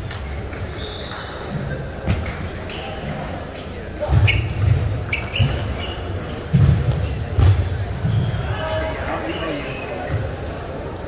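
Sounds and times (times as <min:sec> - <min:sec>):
table tennis play: 0:00.0 - 0:08.4
echoing background chatter: 0:00.0 - 0:11.0.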